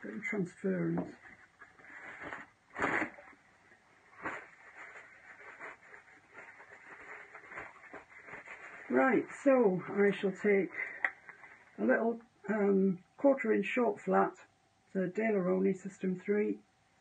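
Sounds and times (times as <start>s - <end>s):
paper tissue rustling: 0.1s - 11.8s.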